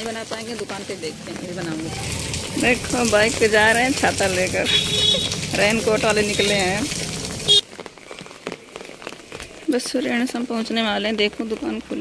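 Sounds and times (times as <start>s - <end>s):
light rain pattering on pavement: 0.0s - 12.0s.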